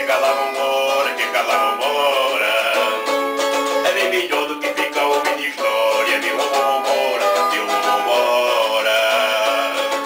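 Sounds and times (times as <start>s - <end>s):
man singing: 0.0s - 10.0s
small guitar strumming: 0.0s - 10.0s.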